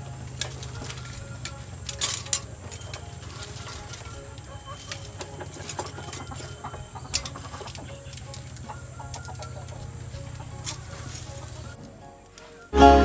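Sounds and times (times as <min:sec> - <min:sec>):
chickens clucking: 0:00.0 - 0:13.0.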